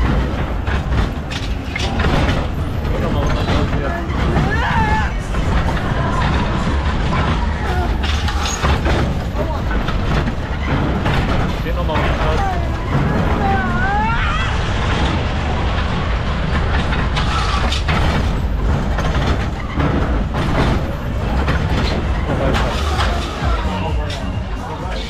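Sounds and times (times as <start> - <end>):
coaster wheels rumbling on track: 0.0 - 25.0.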